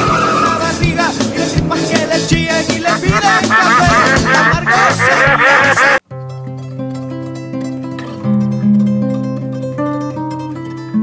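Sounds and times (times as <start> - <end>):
loud upbeat music: 0.4 - 6.0
plucked guitar music: 2.4 - 11.0
cartoon duck quacks: 2.9 - 6.0.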